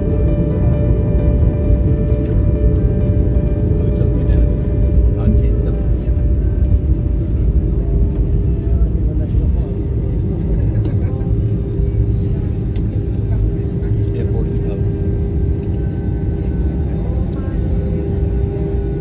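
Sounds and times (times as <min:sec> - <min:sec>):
airliner cabin rumble: 0:00.0 - 0:19.0.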